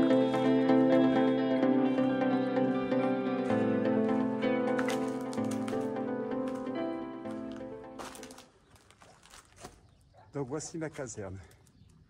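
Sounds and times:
background music: 0.0 - 8.6
faint outdoor ambience: 0.0 - 12.0.

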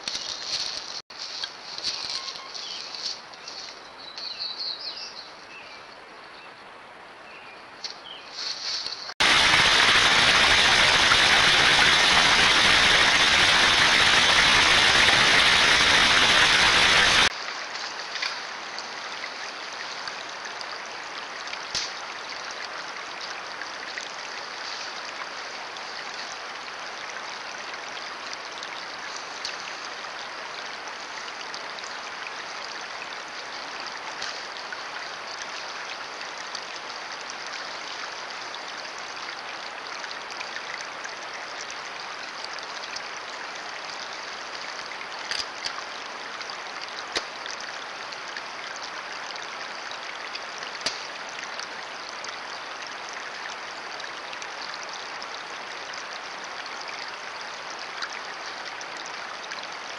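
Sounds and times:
creek running over rocks: 0.0 - 59.9.

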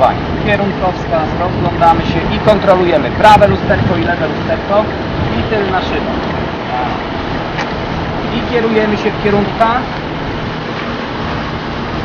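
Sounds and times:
car engine running at low speed: 0.0 - 12.0.

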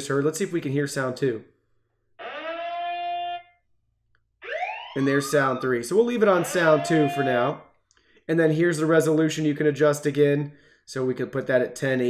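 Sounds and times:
electronic siren tone: 2.2 - 3.6, 4.4 - 7.6.

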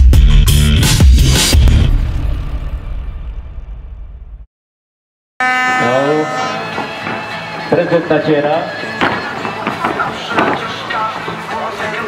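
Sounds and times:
electronic music with heavy beat: 0.0 - 1.9
long steady pitched tone: 5.4 - 7.1
people's voices: 5.8 - 12.0.

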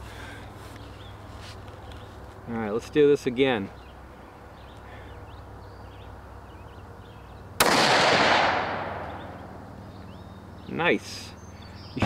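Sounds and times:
rifle shot: 7.6 - 9.4.

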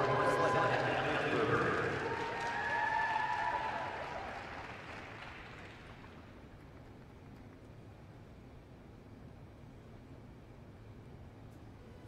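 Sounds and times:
crowd applause: 0.0 - 6.3.

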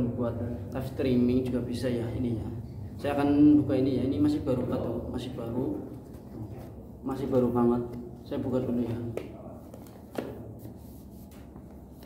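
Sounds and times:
tap on packaging: 10.1 - 10.4.

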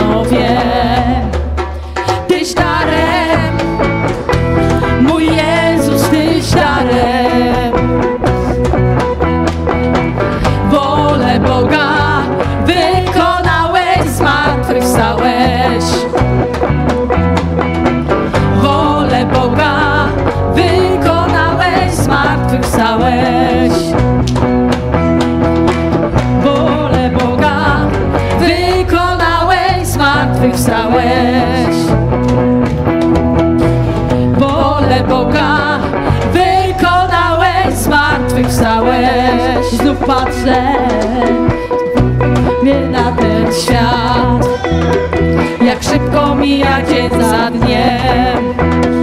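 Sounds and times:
person singing: 0.0 - 8.7, 10.2 - 16.4, 18.3 - 24.1, 26.2 - 32.0, 34.0 - 49.0
electric guitar: 0.0 - 49.0
live worship band music: 0.0 - 49.0.

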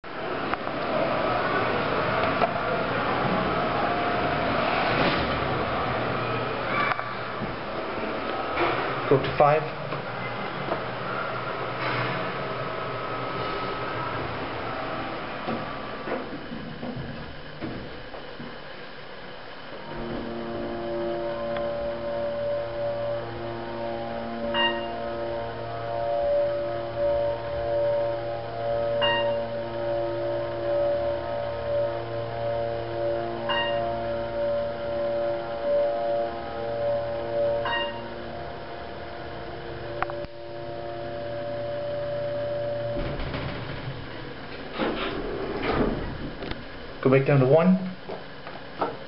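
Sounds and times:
elevator pump hum: 0.0 - 49.0
elevator doors rumbling open: 0.1 - 47.2
short beeps: 24.5 - 25.0, 29.0 - 29.5, 33.5 - 34.0, 37.6 - 38.2
elevator click: 37.6 - 38.1, 42.8 - 46.7.

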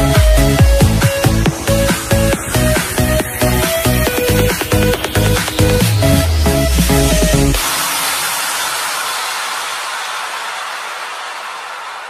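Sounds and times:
white-noise sweep hiss: 0.4 - 12.0.

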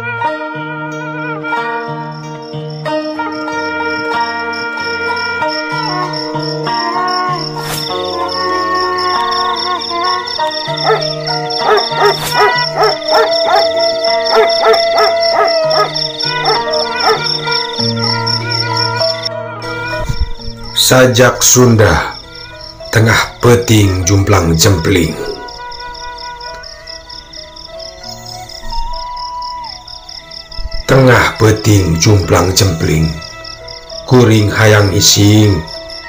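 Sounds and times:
eerie background music: 0.0 - 36.0
high chirping: 2.1 - 21.1
dog barking: 10.8 - 17.4.

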